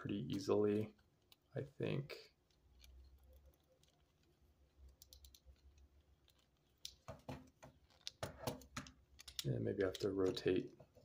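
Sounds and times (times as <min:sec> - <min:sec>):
plastic toy parts clicking: 0:02.3 - 0:10.6.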